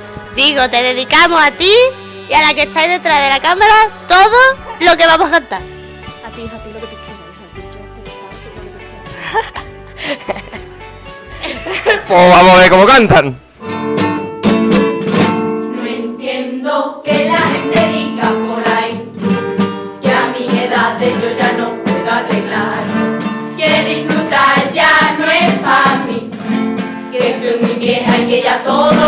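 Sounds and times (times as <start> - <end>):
guitar strumming: 0.0 - 12.5, 13.4 - 29.0
women singing in chorus: 15.7 - 19.2, 20.0 - 23.0, 23.6 - 26.3, 27.1 - 29.0.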